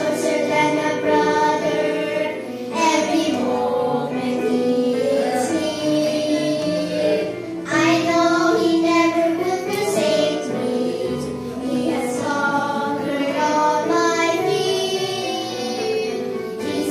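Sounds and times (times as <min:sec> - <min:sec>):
girls singing into microphones: 0:00.0 - 0:16.9
instrumental accompaniment: 0:00.0 - 0:16.9
singers drawing breath: 0:02.3 - 0:02.8.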